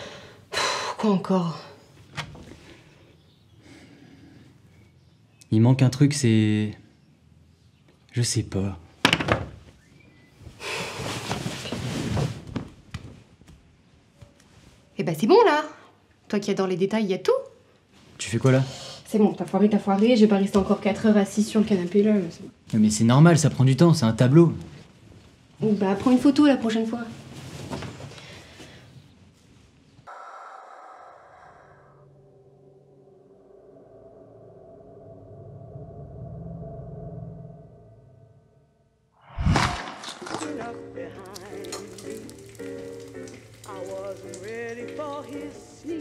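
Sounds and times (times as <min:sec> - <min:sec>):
rough wood scraping: 0:39.3 - 0:46.0.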